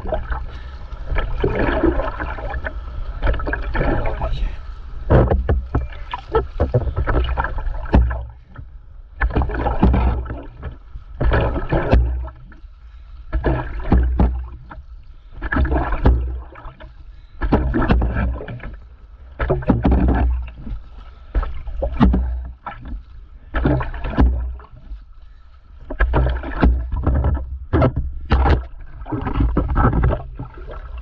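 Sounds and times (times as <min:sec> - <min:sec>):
sea water sloshing and splashing: 0:00.0 - 0:31.0.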